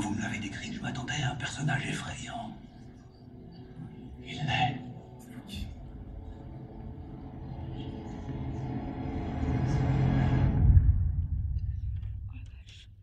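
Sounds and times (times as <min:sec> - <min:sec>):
orchestral film score: 0:00.0 - 0:12.8
deep rumble: 0:05.8 - 0:13.0.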